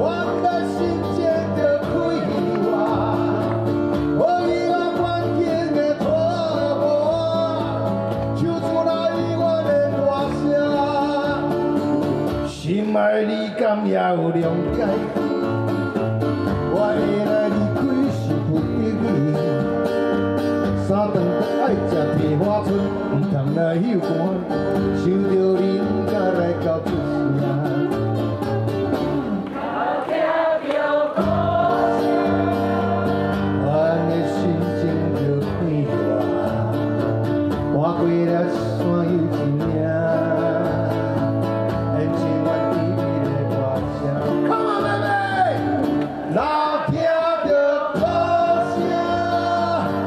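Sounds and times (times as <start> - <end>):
acoustic guitars playing: 0.0 - 50.0.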